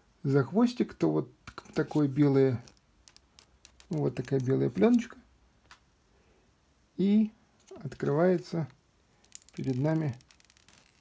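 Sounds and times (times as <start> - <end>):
protective film peeling off screen: 1.7 - 5.2, 9.2 - 11.0.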